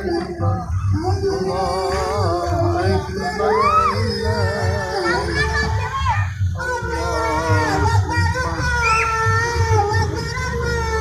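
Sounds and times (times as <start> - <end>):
low pulsing beat: 0.0 - 11.0
children calling out and chanting: 2.8 - 11.0.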